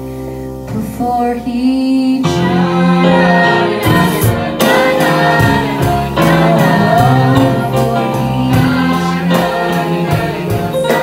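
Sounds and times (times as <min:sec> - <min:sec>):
young singers in chorus: 0:01.6 - 0:11.0.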